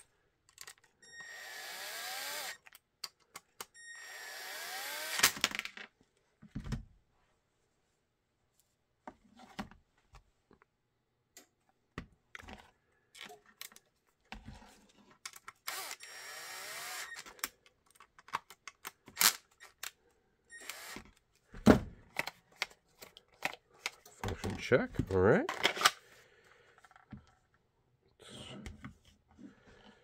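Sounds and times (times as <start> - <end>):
impact driver driving screw: 1.1 - 2.6, 3.9 - 5.4, 15.6 - 17.3, 20.6 - 21.1.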